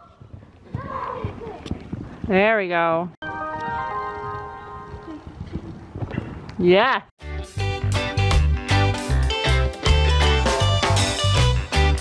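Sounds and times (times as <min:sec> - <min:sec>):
horse hoofbeats on sand: 0:00.0 - 0:03.0.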